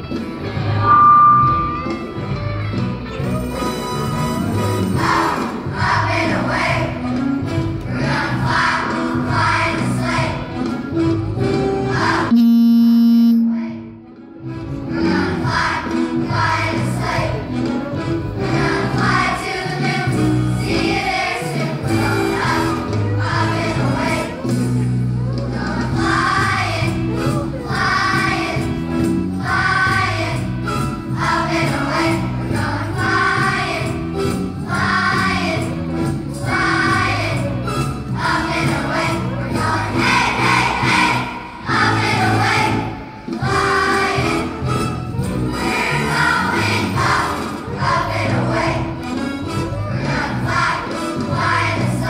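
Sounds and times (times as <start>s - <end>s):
instrumental accompaniment: 0.5s - 4.2s
loud sustained note: 0.8s - 2.3s
children's choir singing: 5.0s - 7.1s, 7.9s - 10.7s, 13.4s - 14.0s, 14.9s - 17.6s, 18.4s - 24.4s, 25.5s - 28.8s, 29.4s - 30.6s, 31.2s - 44.8s, 45.4s - 49.2s, 49.9s - 52.0s.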